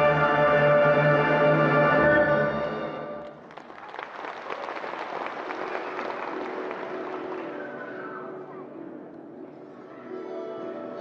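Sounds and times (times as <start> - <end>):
audience applauding: 3.2 - 8.2.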